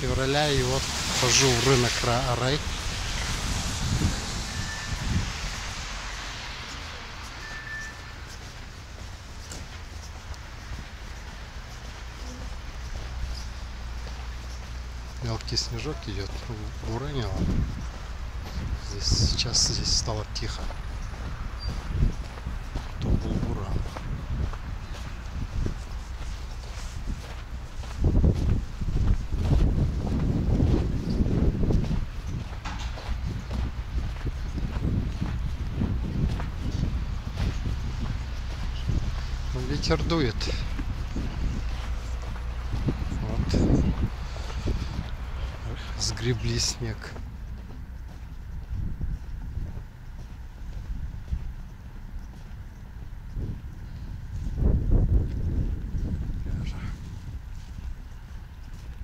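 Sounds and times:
footsteps on snow: 0.0 - 59.0
wind rumbling on microphone: 0.0 - 59.0.

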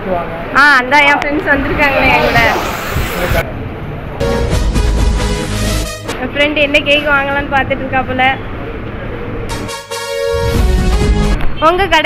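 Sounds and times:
people talking: 0.0 - 3.6, 11.6 - 12.0
high swooping voice: 0.9 - 3.5.

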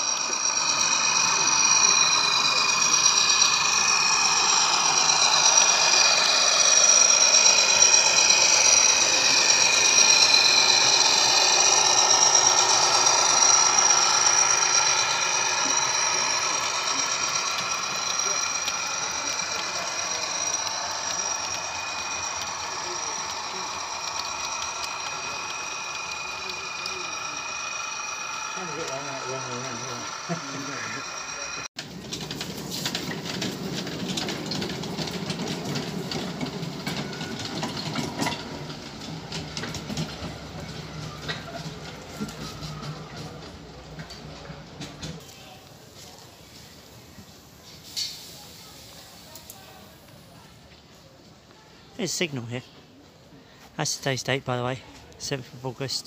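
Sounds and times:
wheels clicking on rail joints: 0.0 - 52.2
wheels running on track: 0.0 - 53.1
miniature railway rumbling: 0.0 - 56.0
model train motors whining: 0.0 - 56.0.

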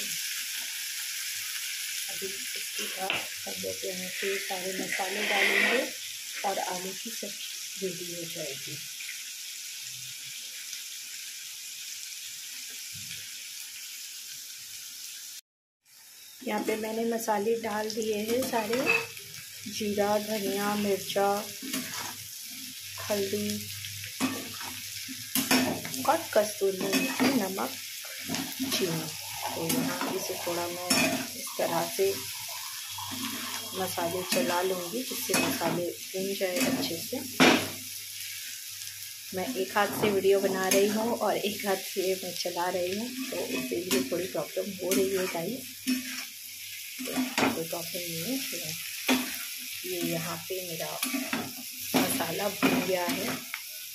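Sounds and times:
potatoes sizzling in oil: 0.0 - 53.9
spatula scraping pan: 3.8 - 6.0, 18.3 - 19.2, 21.4 - 22.2, 26.8 - 35.8, 43.0 - 46.4, 51.0 - 53.4.

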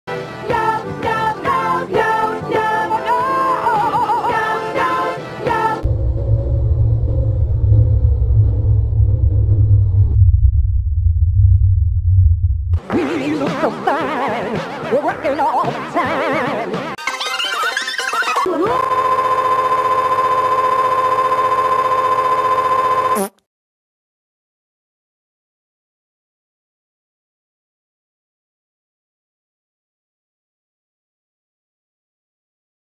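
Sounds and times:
deep bass rumble: 5.8 - 12.8
loud buzzy tone: 5.8 - 12.8, 18.5 - 23.4.

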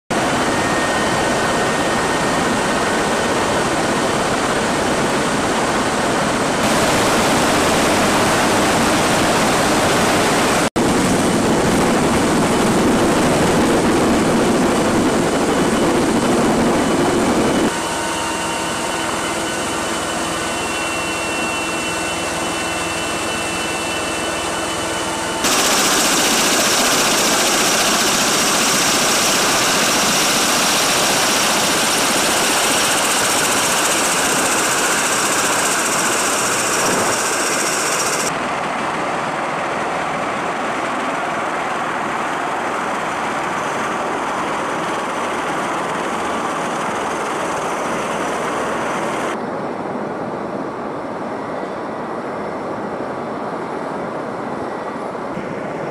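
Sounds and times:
aircraft engines and rotors running: 0.1 - 55.9.

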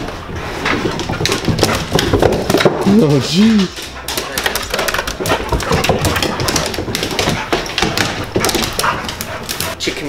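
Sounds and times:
dog claws clicking on tile: 0.7 - 9.8.

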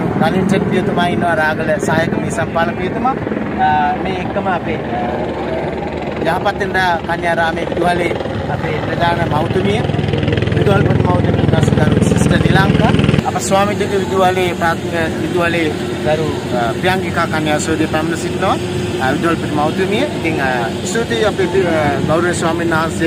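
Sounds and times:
people talking outdoors: 0.0 - 23.0.

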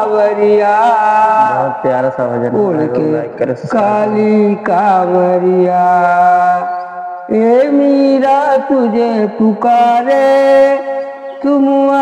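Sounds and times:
elderly man singing devotional song: 0.0 - 12.0.

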